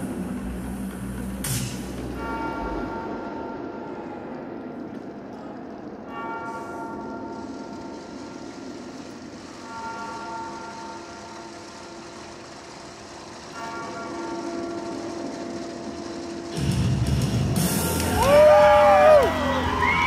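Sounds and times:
bell tolling: 1.0s - 18.2s.

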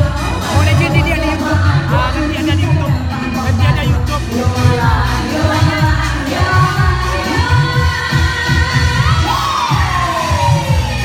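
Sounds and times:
crowd noise: 0.0s - 11.0s
live amplified music with singer: 0.0s - 11.0s
pulsing bass beat: 0.0s - 11.0s.

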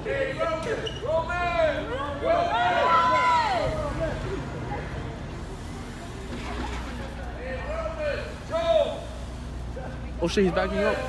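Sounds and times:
people shouting: 1.2s - 4.2s.

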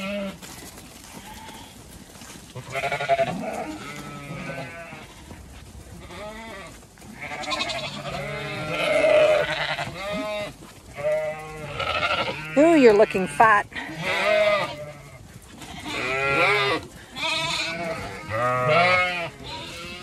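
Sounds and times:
sheep bleating: 0.0s - 0.5s, 1.2s - 1.8s, 2.6s - 5.4s, 6.0s - 20.0s.

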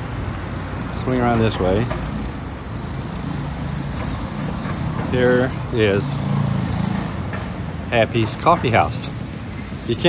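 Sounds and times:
street traffic noise: 0.0s - 10.0s
vehicle engine humming: 0.0s - 10.0s.

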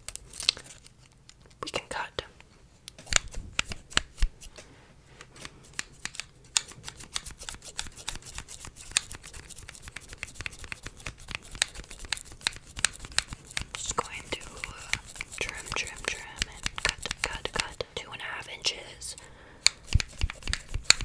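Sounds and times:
scissors snipping: 5.2s - 17.8s, 19.1s - 21.0s.

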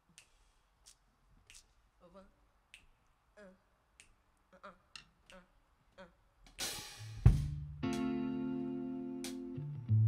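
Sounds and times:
soft vocal sounds: 0.0s - 6.4s
faint finger snaps: 0.1s - 1.8s, 2.7s - 3.2s, 4.0s - 4.2s.

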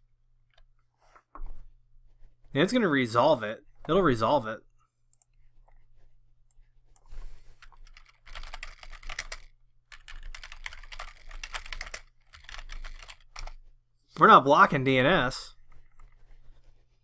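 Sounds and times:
typing on computer keyboard: 7.6s - 13.6s.

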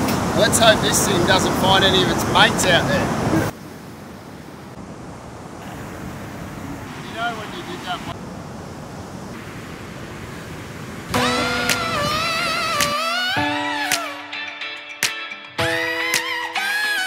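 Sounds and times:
wind: 0.0s - 14.3s
ocean surf: 0.0s - 17.0s
music: 11.2s - 17.0s.

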